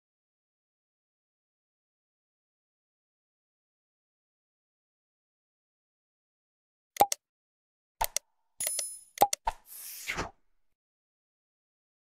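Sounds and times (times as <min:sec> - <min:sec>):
mouse clicks: 0:07.0 - 0:07.2, 0:08.0 - 0:10.1.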